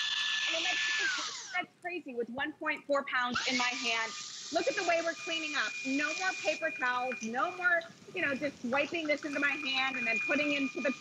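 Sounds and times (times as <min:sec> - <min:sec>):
handheld vacuum whining: 0:00.0 - 0:01.6, 0:03.4 - 0:07.6
motor winding down: 0:00.0 - 0:01.6, 0:03.4 - 0:11.0.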